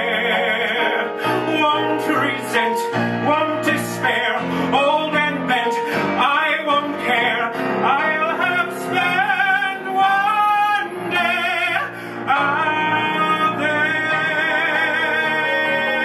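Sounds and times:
instrumental accompaniment: 0:00.0 - 0:16.0
man singing: 0:00.0 - 0:16.0.

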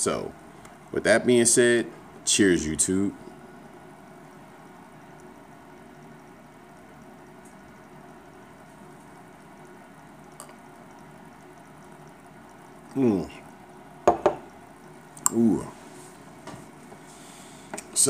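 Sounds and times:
background hiss and hum: 0:00.0 - 0:18.0.

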